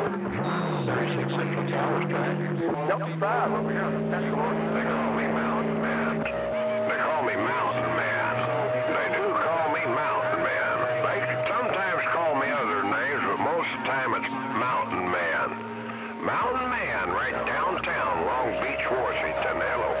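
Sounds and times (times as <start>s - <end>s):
garbled radio voices: 0.0s - 20.0s
radio whistle tones: 0.4s - 1.2s, 4.0s - 20.0s.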